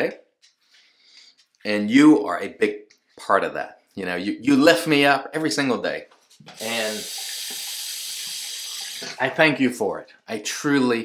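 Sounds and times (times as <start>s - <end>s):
tap water running into sink: 6.4s - 9.3s.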